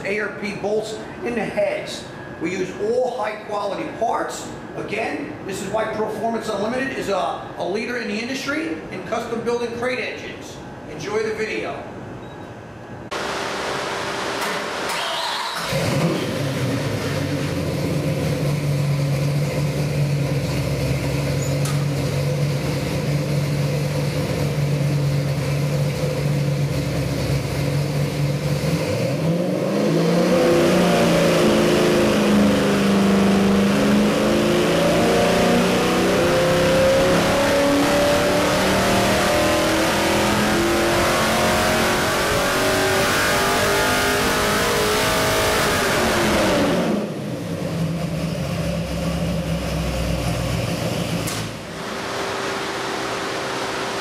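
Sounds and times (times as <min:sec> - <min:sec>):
engine running on a dyno: 0:13.1 - 0:54.0.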